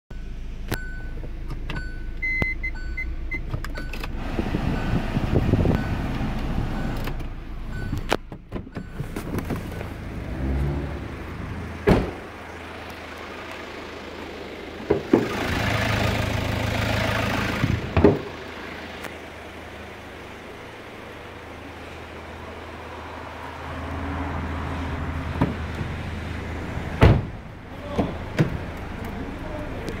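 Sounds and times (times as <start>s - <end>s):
car engine and handling noise: 0.2s - 30.0s
car door click: 11.8s - 12.2s
car door thump: 11.8s - 12.3s, 17.8s - 18.4s, 25.4s - 26.0s, 27.0s - 28.6s.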